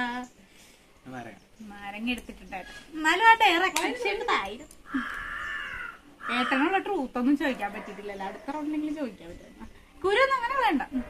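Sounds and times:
crow cawing: 4.8 - 7.0.

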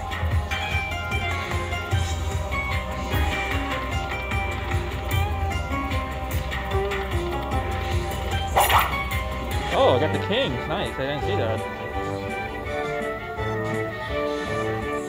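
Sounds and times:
slot machine electronic music: 0.0 - 14.2.

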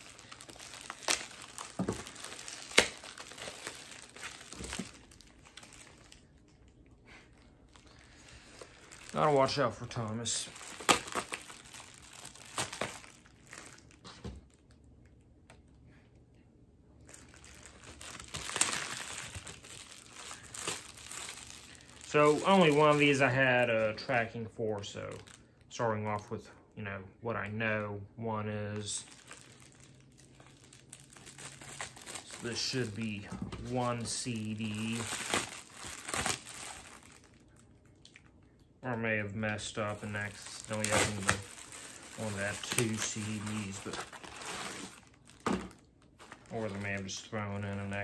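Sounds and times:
packing material crinkling: 0.0 - 14.8, 17.0 - 25.6, 28.8 - 38.2, 39.5 - 48.0.

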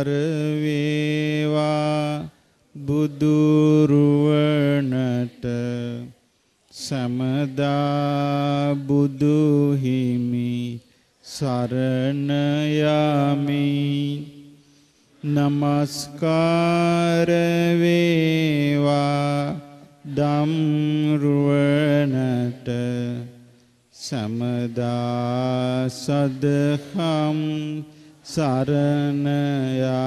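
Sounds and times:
man chanting into a microphone: 0.0 - 30.0.

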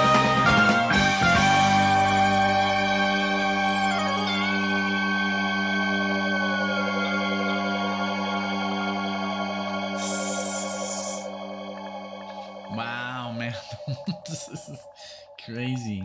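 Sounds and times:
held lead tone bending down: 0.0 - 16.0
sustained synthesizer chord: 0.0 - 16.0.

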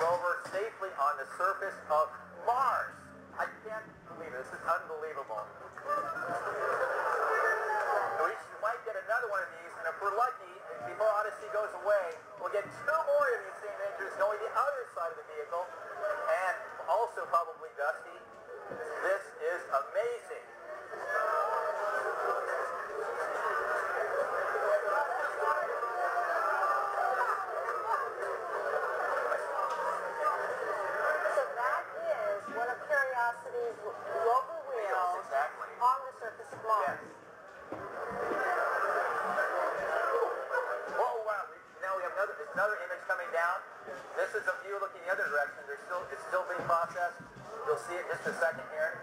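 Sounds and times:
crowd cheering through tv speaker: 4.6 - 49.0.

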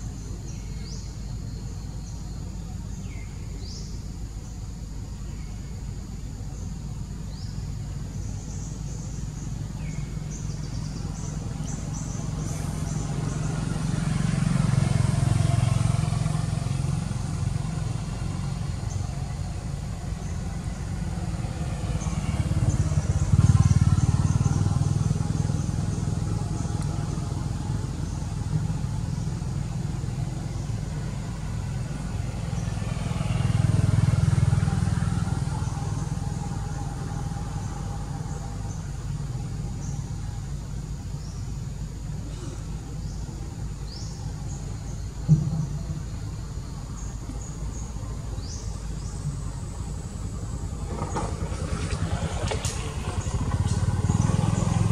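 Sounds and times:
road vehicles passing by: 0.0 - 54.9
steady low rumble: 34.4 - 54.9.

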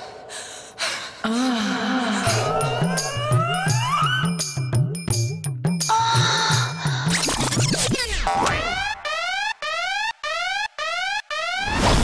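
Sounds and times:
rising electronic siren whoop: 2.2 - 4.7, 8.5 - 12.0.

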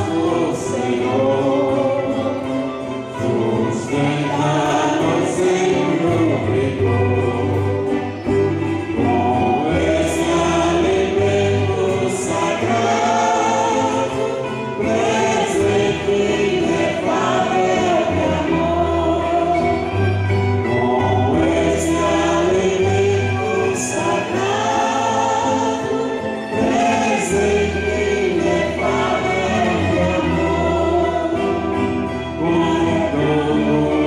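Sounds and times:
choir singing a hymn: 0.0 - 34.0
low instrumental accompaniment: 0.0 - 34.0.

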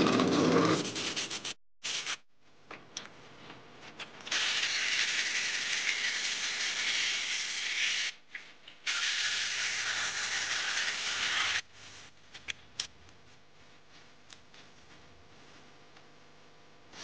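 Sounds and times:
sandpaper hissing on spinning wood: 8.9 - 11.6.

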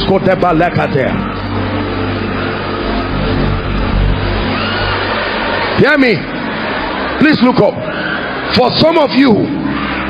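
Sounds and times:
low music drone: 0.0 - 10.0.

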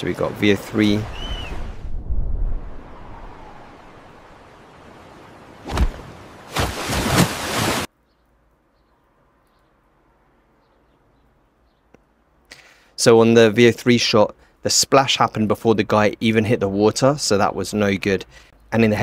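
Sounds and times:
wind: 0.0 - 19.0
sea noise: 0.1 - 7.9
rush of water: 0.6 - 7.9
sharp splash: 5.6 - 7.9.

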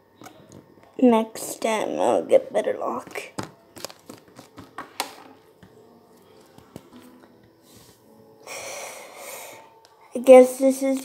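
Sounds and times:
person exhaling breathily: 8.5 - 9.7.

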